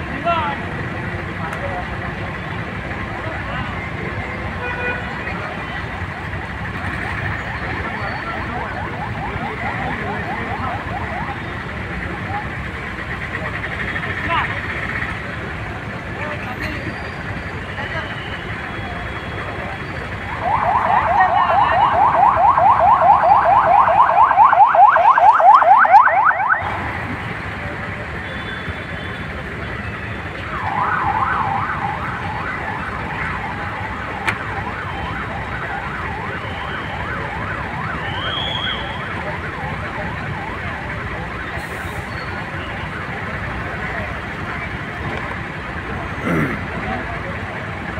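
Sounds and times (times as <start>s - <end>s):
road traffic noise: 0.0s - 47.9s
electronic siren warbling: 20.2s - 26.7s, 30.5s - 39.6s.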